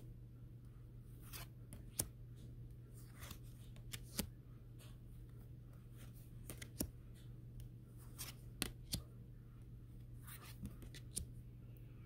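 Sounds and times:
cards flicking: 6.4 - 6.9.

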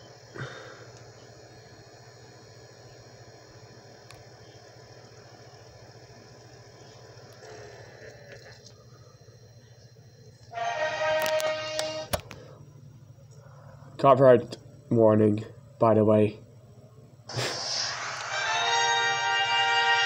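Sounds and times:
steady low hum: 0.0 - 20.0
loud horn-like chord: 10.5 - 12.1, 18.3 - 20.0.

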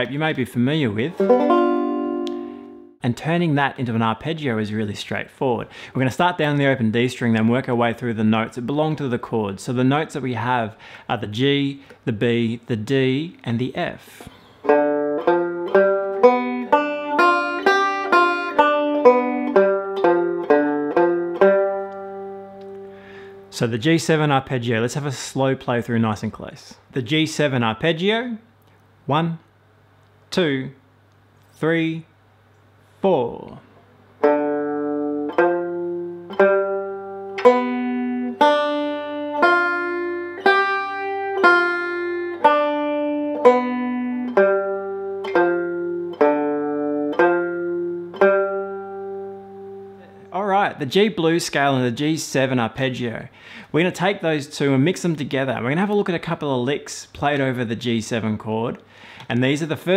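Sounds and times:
banjo picked arpeggio: 1.1 - 3.0, 14.6 - 23.5, 34.2 - 50.3.

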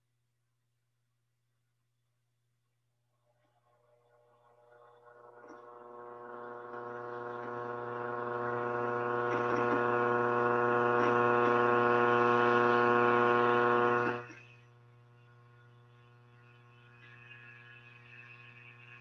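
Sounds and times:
electrical buzzing hum: 5.0 - 19.0.

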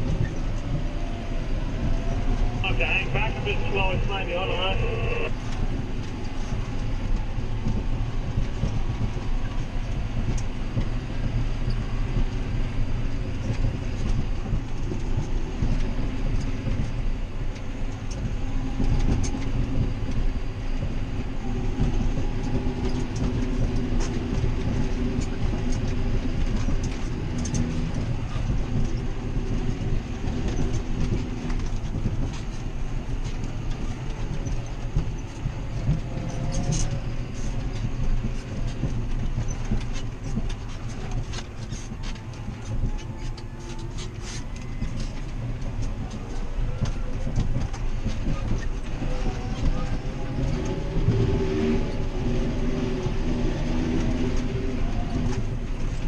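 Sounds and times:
cab rattles and clicks: 0.0 - 56.0
tractor engine drone in cab: 0.0 - 56.0.

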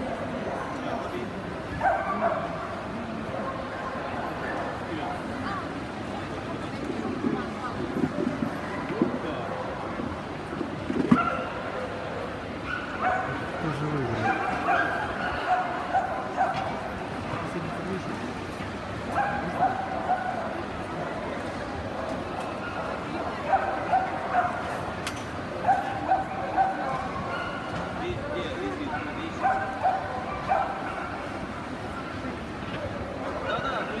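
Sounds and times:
crowd chatter indoors: 0.0 - 34.0
dog barking: 1.8 - 2.6, 11.2 - 12.0, 12.6 - 13.5, 14.2 - 16.7, 19.1 - 20.5, 22.6 - 24.7, 25.6 - 27.7, 28.9 - 31.3.

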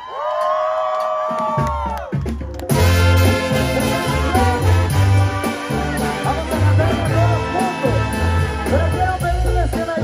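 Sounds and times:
crowd cheering: 0.0 - 9.2
live brass band music: 2.7 - 10.0.

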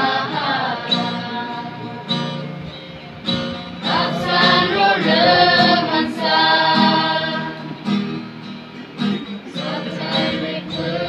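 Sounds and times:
group of students singing: 0.0 - 2.4, 3.7 - 8.1, 9.3 - 11.0
acoustic guitar strummed: 0.0 - 11.0.

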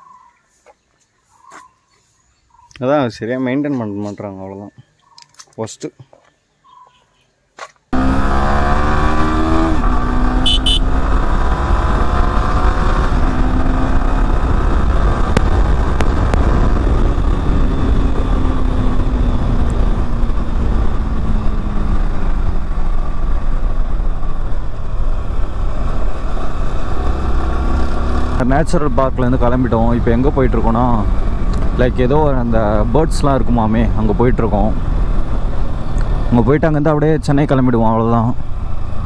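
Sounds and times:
motorcycle engine accelerating: 7.9 - 39.0
wind rumble on microphone: 11.0 - 36.3.

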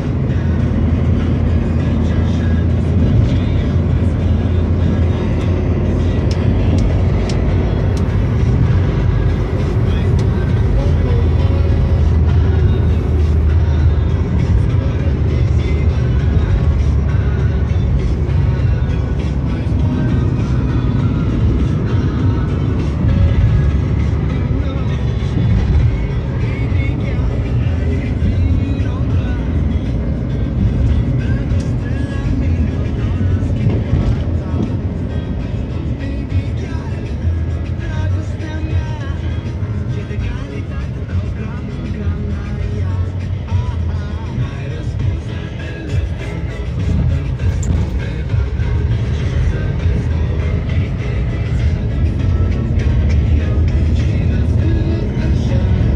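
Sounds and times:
car road and engine rumble: 0.0 - 55.9
music playing: 0.0 - 55.9.

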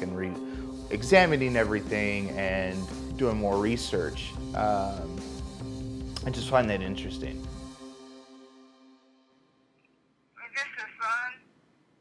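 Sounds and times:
woman talking over phone: 10.4 - 11.4.

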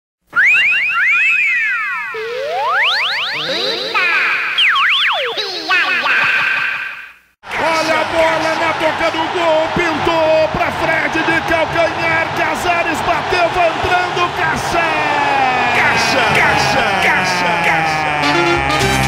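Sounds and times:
electronic sliding tones: 0.3 - 7.2
person speaking: 5.4 - 6.7, 11.9 - 18.5.

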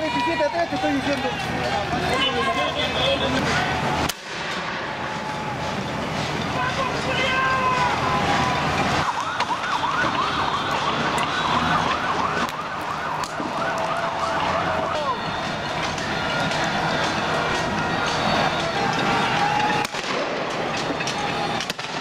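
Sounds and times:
street protest noise: 0.0 - 22.0
police siren yelping: 7.8 - 19.8.

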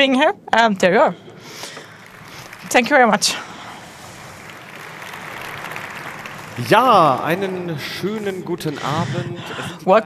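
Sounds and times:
audience applauding: 1.4 - 9.6.

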